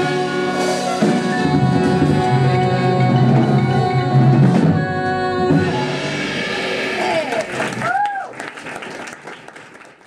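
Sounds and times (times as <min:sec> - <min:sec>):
audience applauding: 0:07.0 - 0:10.0.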